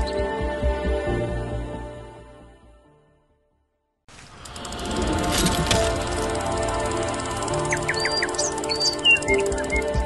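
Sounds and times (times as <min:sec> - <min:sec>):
intro music of held tones: 0:04.2 - 0:10.0
bird-like chirps: 0:07.7 - 0:10.0.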